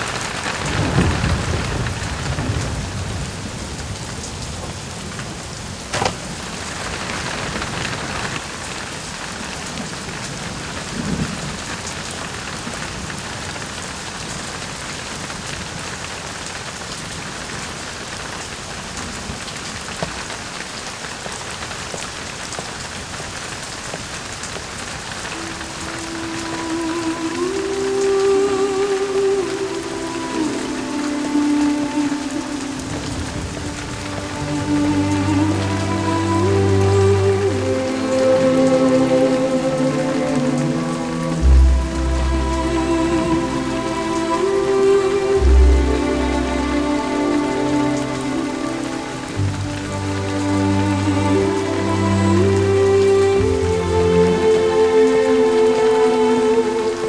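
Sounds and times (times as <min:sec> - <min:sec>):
steady rain falling: 0:00.0 - 0:57.0
slow music with held notes: 0:25.2 - 0:57.0.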